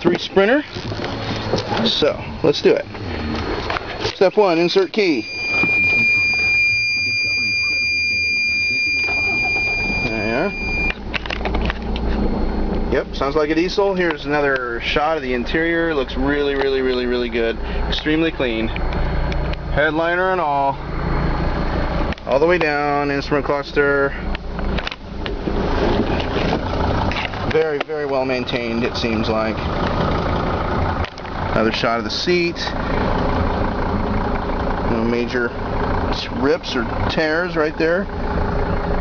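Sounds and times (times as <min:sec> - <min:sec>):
diesel engine cranking and starting: 0:00.0 - 0:39.0
dashboard warning buzzer: 0:04.6 - 0:11.0.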